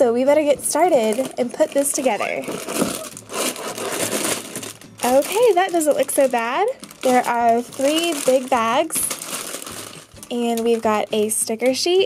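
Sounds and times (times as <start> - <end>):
cardboard box tearing: 2.1 - 4.8.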